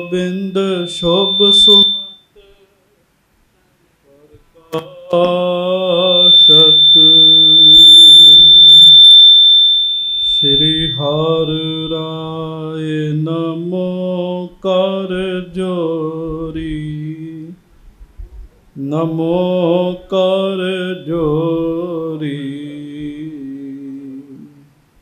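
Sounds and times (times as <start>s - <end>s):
high-pitched feedback whistle: 0.0s - 2.3s, 5.6s - 12.5s
man chanting into a microphone: 4.1s - 7.8s, 10.4s - 17.6s, 18.8s - 24.7s.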